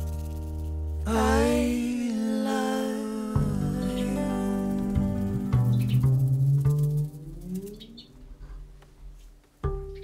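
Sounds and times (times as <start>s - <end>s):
acoustic guitar: 0.0s - 10.0s
double bass: 0.0s - 10.0s
birds chirping: 5.5s - 6.4s, 7.0s - 8.3s.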